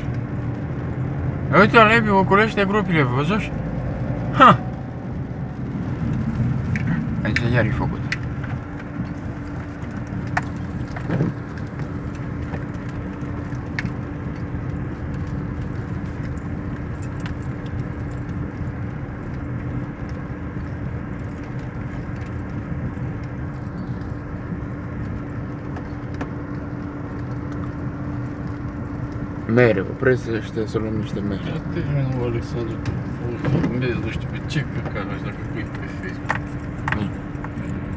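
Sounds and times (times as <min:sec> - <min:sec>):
car engine hum: 0:00.0 - 0:37.9
tyres rumbling on gravel: 0:00.0 - 0:37.9.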